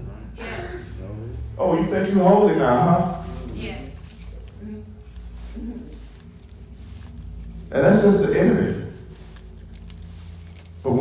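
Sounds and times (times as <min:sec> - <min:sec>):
man speaking: 0:00.0 - 0:03.6, 0:07.7 - 0:09.0
low steady hum: 0:00.0 - 0:11.0.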